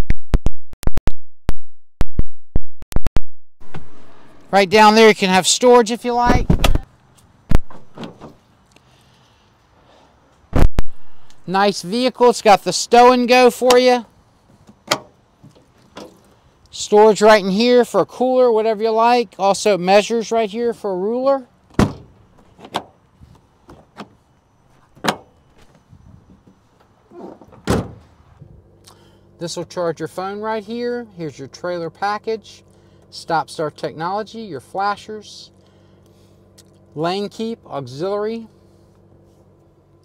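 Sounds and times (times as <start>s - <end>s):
truck door slamming: 6.2s - 6.8s, 7.5s - 8.4s, 14.7s - 15.2s, 21.7s - 23.0s, 24.9s - 25.7s, 26.3s - 28.1s
tailgate dropping open: 7.5s - 8.4s, 14.7s - 16.3s, 21.7s - 23.0s, 24.8s - 25.7s, 26.3s - 28.1s.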